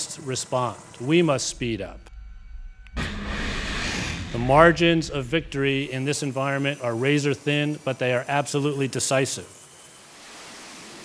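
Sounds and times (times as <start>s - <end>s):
faint hum: 0.0s - 7.8s
missile launch roar: 1.4s - 6.1s.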